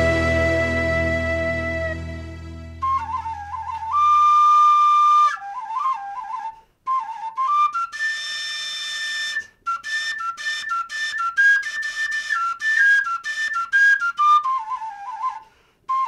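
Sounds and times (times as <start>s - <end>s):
flute-like wind melody: 0.0s - 16.0s.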